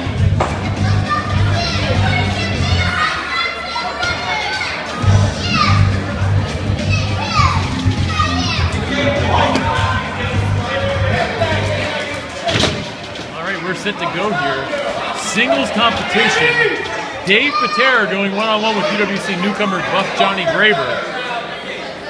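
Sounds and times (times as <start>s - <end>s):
crowd noise: 0.0s - 22.0s
children shouting: 0.8s - 12.5s, 14.1s - 22.0s.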